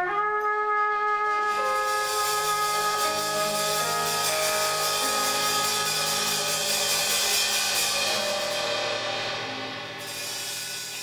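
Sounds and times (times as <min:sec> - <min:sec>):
cymbals: 0:00.0 - 0:11.0
drum kit: 0:00.0 - 0:11.0
trumpet holding high note: 0:00.0 - 0:11.0.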